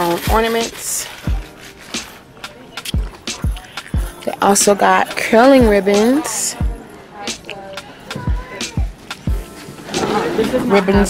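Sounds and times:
hip-hop beat: 0.2 - 11.0.

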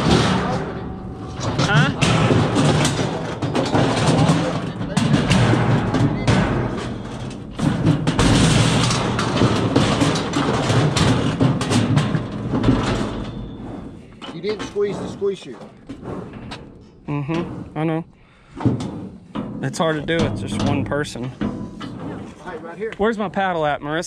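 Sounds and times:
steel chute banging and rattling: 0.0 - 23.8
continuous low rumble: 0.0 - 24.0.

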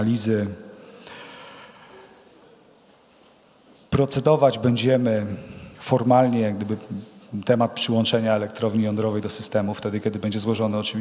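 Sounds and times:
man speaking into microphone: 0.0 - 0.8, 3.9 - 11.0.

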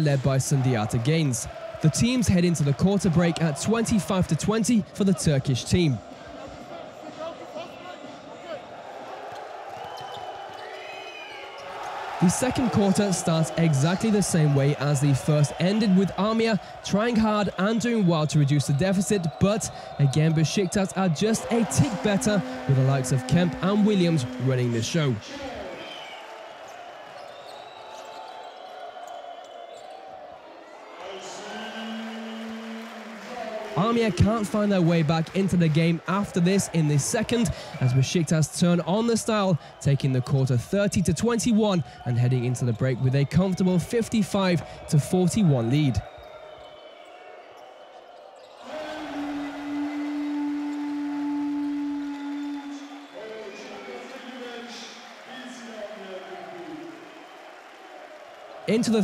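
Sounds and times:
crowd din: 0.0 - 8.3, 11.7 - 25.9
crowd voices: 0.0 - 10.7, 11.4 - 28.4, 29.8 - 59.0
court and crowd noise: 0.0 - 59.0
arena buzzer long steady tone: 21.4 - 25.1, 31.4 - 33.3, 48.7 - 53.2.

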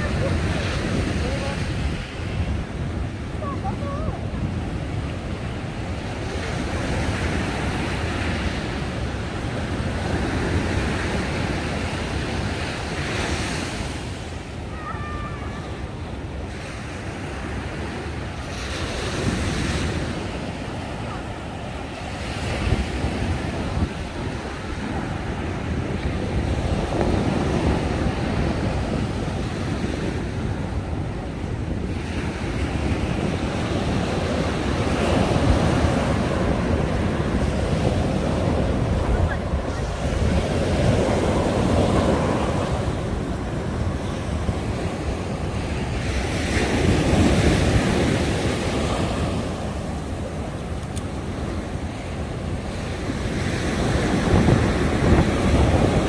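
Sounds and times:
sea waves breaking on beach: 0.0 - 56.0
wind rumbling on microphone: 0.0 - 56.0.

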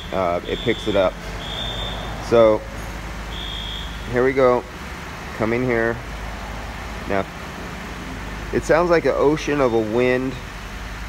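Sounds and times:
machinery humming: 0.0 - 11.0.

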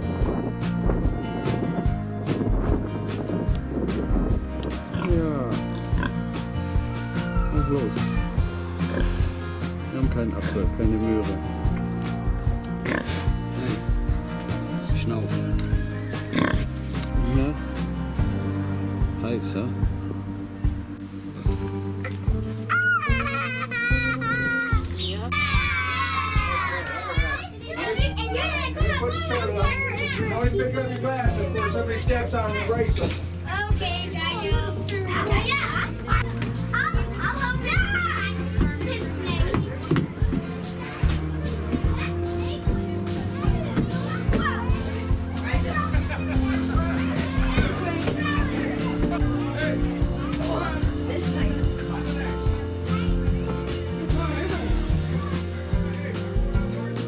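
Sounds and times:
background music: 0.0 - 57.0
pig grunting: 12.8 - 13.8
young children chattering: 22.8 - 57.0.

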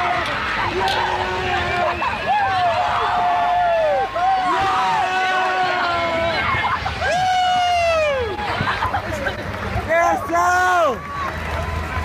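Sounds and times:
crowd noise: 0.0 - 12.0
voices cheering with long shouts: 0.0 - 12.0.

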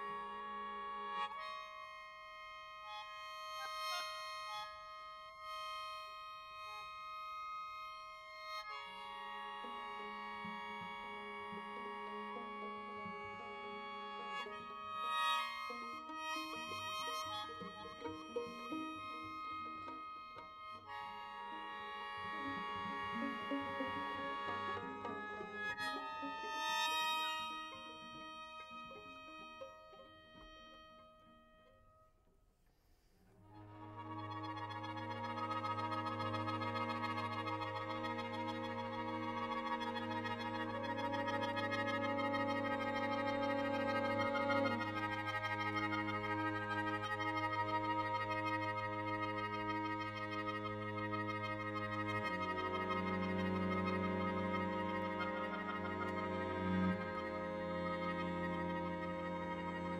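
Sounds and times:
string quartet playing: 0.0 - 31.1, 33.5 - 59.9
wind instrument holding chords: 0.0 - 31.9, 33.5 - 59.9.

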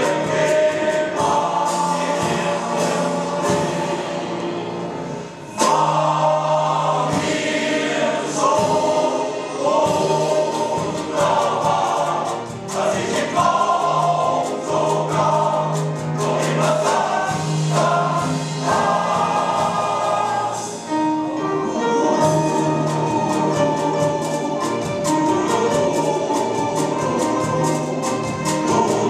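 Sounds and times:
male choir singing in harmony: 0.0 - 29.0.

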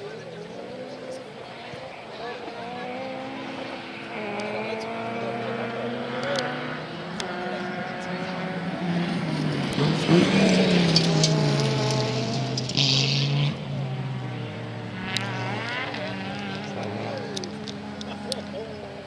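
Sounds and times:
rally car engine revving: 0.0 - 19.0.

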